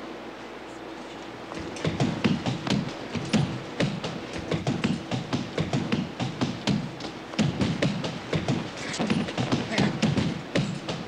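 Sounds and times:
hard-soled footsteps hurrying: 0:01.5 - 0:11.0.

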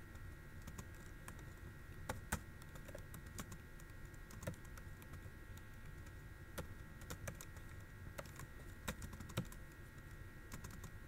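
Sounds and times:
keyboard typing: 0:00.6 - 0:11.0.

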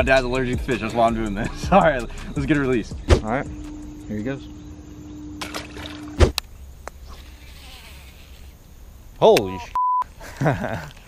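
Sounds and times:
insect buzzing: 0:01.0 - 0:09.6
loud thump: 0:05.4 - 0:06.4.

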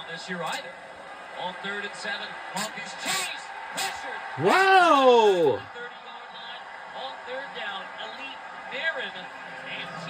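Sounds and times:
faint television voices: 0:00.0 - 0:10.0.

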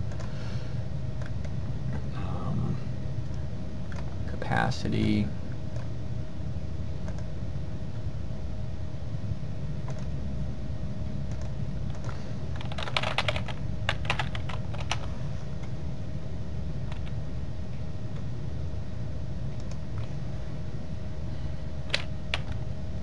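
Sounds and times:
steady low hum: 0:00.0 - 0:23.0
typing on computer keyboard: 0:11.3 - 0:15.1.

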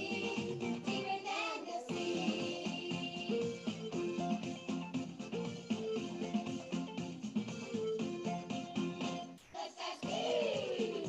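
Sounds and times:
child singing: 0:00.0 - 0:03.5, 0:09.5 - 0:11.0
backing music: 0:00.0 - 0:11.0.

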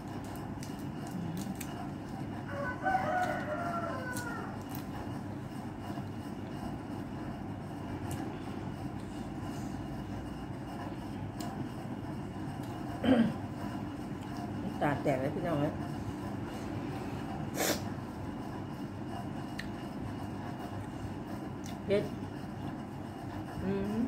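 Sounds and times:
rooster crowing: 0:02.4 - 0:04.7.

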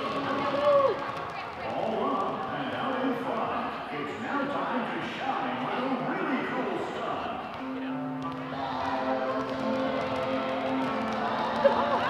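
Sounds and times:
basketballs bouncing on wooden floor: 0:00.0 - 0:03.1, 0:09.2 - 0:11.7
crowd chatter: 0:00.0 - 0:12.0.

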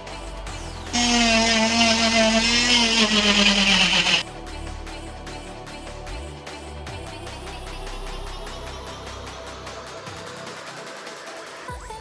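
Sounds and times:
cast saw motor whine: 0:00.9 - 0:04.2.

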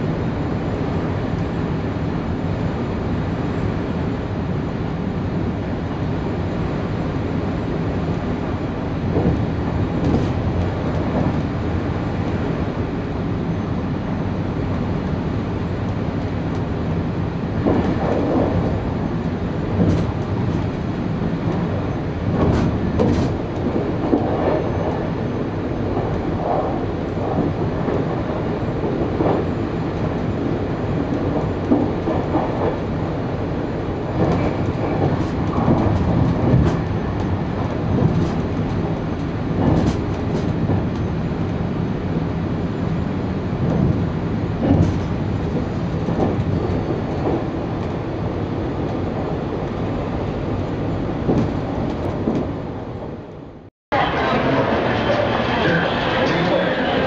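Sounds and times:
train running rumble: 0:00.0 - 0:57.0
train wheel knocks: 0:09.1 - 0:12.2, 0:17.6 - 0:25.0, 0:28.9 - 0:41.2, 0:43.6 - 0:53.2.

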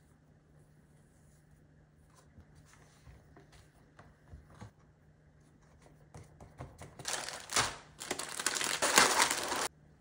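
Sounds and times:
plastic wrapper crinkling and tearing: 0:07.0 - 0:09.7.

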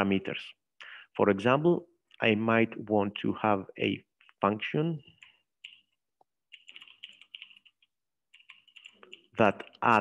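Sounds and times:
typing on a keyboard: 0:05.2 - 0:09.8.

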